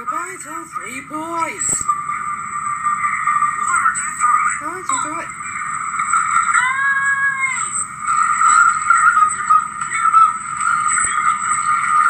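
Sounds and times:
thin high whine: 0:00.0 - 0:12.0.

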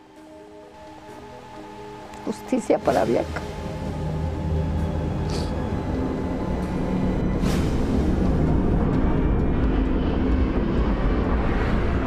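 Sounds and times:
dark droning low rumble: 0:00.0 - 0:12.0.

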